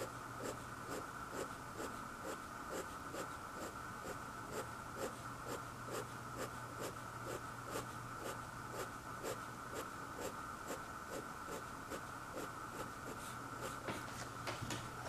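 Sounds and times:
pen scratching on paper: 0.0s - 14.0s.

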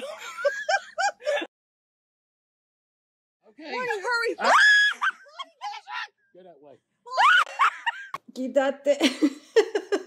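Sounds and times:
person screaming: 4.4s - 6.1s, 7.1s - 7.5s.

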